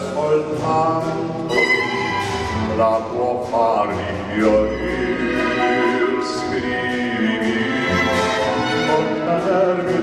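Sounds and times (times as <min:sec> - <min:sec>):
man singing: 0:00.0 - 0:10.0
string orchestra playing: 0:00.0 - 0:10.0.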